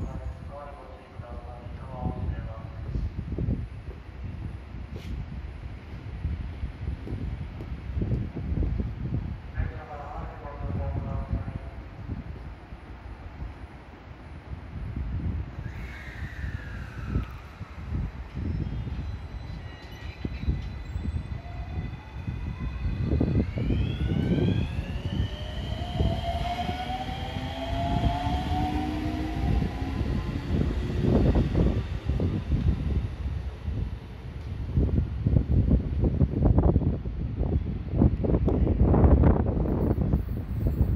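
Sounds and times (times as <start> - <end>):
electric train motors whining: 19.7 - 32.7
low rumble: 20.5 - 40.9.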